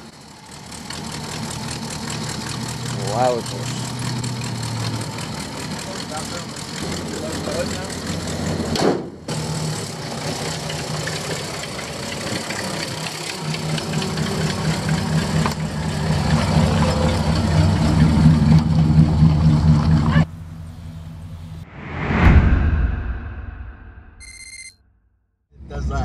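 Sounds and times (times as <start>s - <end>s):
car engine idling: 0.0s - 21.6s.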